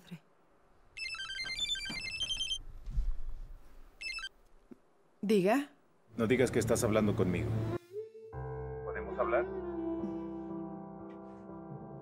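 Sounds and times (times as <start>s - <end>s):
phone ringtone melody: 1.0s - 2.6s, 4.0s - 4.4s.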